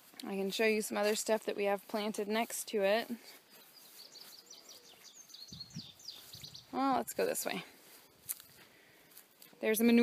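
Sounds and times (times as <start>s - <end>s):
faint outdoor ambience: 0.0s - 10.0s
high bird chirps: 3.5s - 6.8s.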